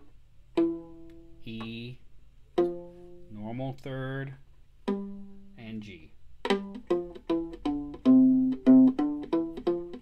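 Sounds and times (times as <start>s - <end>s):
plucked viola notes: 0.0s - 10.0s.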